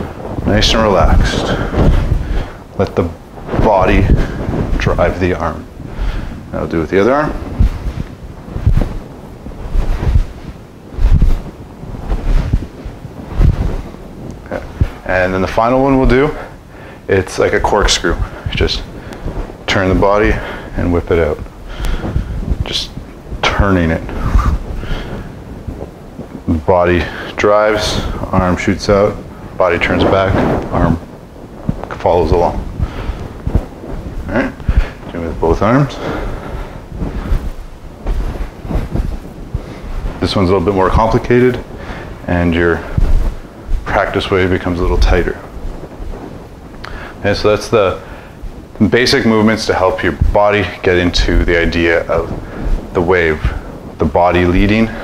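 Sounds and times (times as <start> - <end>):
soft swishes of arms: 0.0 - 16.7, 17.6 - 48.1
air whooshes: 0.0 - 17.1, 17.8 - 48.8
body movement rumbling and rustling: 0.0 - 55.0
clothing rubbing on microphone: 0.0 - 55.0.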